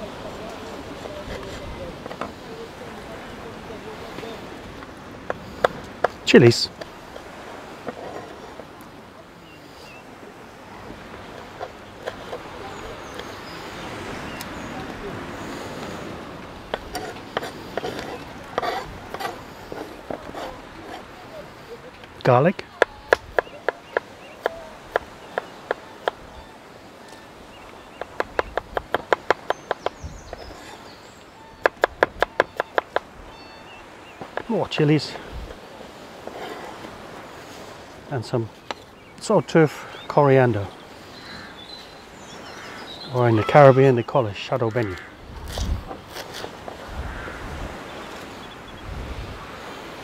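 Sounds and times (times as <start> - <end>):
wind buffeting microphone: 0.0 - 9.4, 10.0 - 39.1, 44.7 - 50.0.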